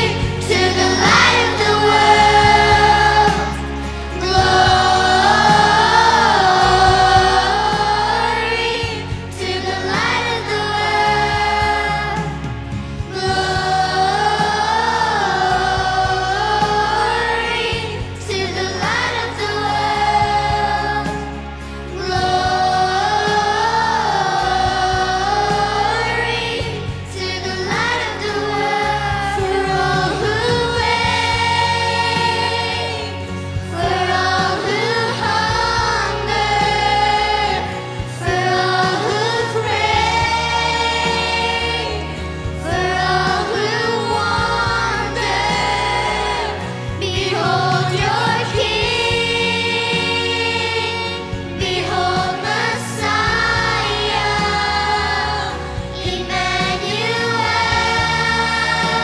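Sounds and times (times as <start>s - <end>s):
children's choir singing: 0.0s - 59.0s
girls singing: 0.0s - 59.0s
instrumental backing: 0.0s - 59.0s.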